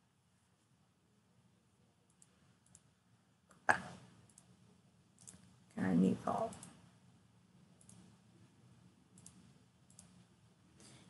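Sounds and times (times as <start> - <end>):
computer mouse clicks: 2.1 - 2.9, 3.5 - 4.5, 5.2 - 5.5, 6.4 - 6.8, 7.8 - 8.2, 9.1 - 10.2.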